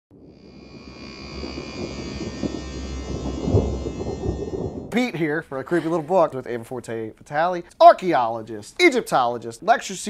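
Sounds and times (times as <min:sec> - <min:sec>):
crackles and thumps: 0:00.1 - 0:05.1
low thunder-like rumble: 0:00.1 - 0:05.1.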